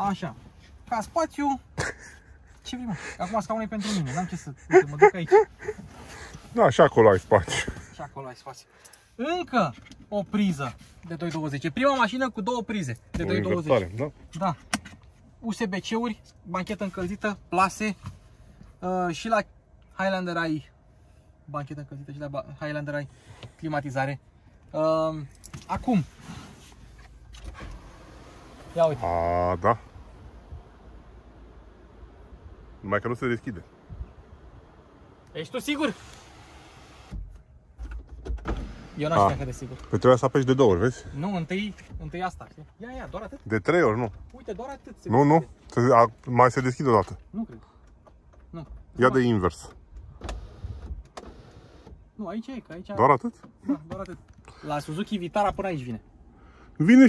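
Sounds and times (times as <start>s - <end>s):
low background rumble: 0.0s - 36.2s.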